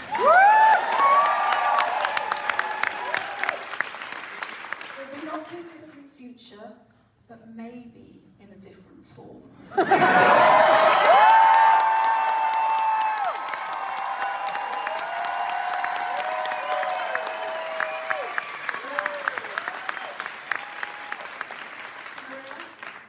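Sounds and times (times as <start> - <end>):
audience applauding and cheering: 0.0 - 5.2, 9.8 - 23.0
long held whoops: 0.1 - 3.6, 10.2 - 21.4.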